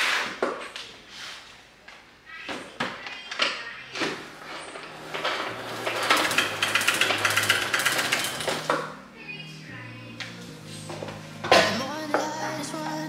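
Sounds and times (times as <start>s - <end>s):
mop bucket whirring spin: 4.0s - 9.0s.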